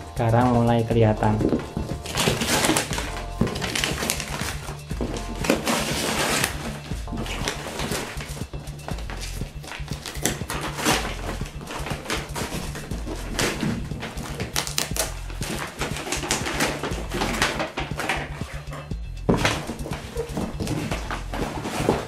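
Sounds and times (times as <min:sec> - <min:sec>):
background music with bass line: 0:00.0 - 0:22.0
paper crinkling: 0:01.2 - 0:22.0.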